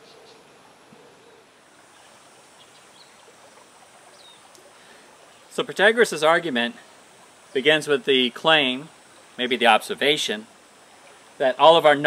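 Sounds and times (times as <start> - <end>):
creek water flowing: 1.5 - 12.0.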